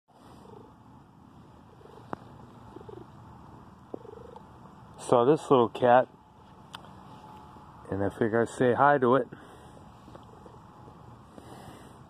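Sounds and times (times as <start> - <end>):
cat purring: 0.2 - 0.8, 1.6 - 4.6.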